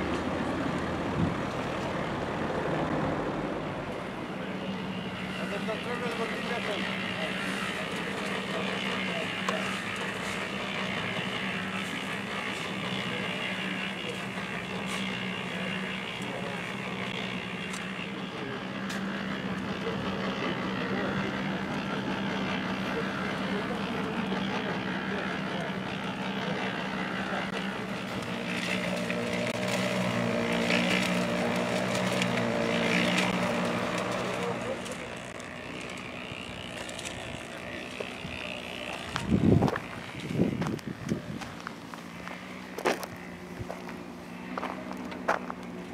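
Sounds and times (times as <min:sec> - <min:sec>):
engine humming: 0:00.0 - 0:45.9.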